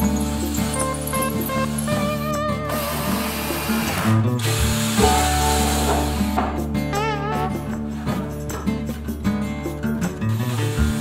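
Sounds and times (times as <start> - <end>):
background music: 0.0 - 11.0
cordless drill boring into wood: 2.7 - 6.2.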